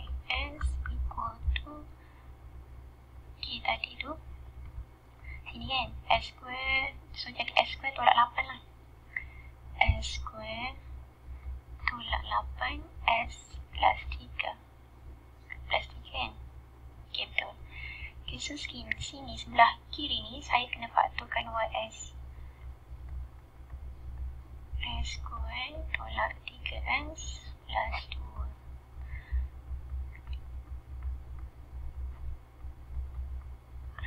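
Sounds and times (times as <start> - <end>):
steady low hum: 0.0 - 34.0.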